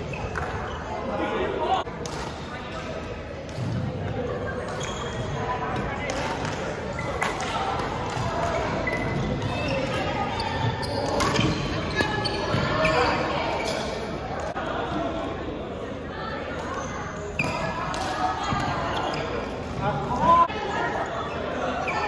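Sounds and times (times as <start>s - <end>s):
rackets hitting shuttlecock: 11.0s - 12.2s.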